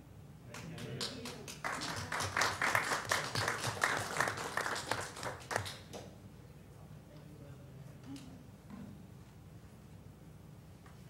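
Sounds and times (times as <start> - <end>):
small audience applause: 0.5 - 6.0.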